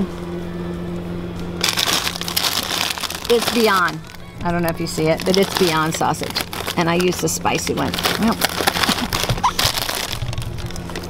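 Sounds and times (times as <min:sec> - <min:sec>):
steady low hum: 0:00.0 - 0:11.0
plastic packaging crackling: 0:01.6 - 0:11.0.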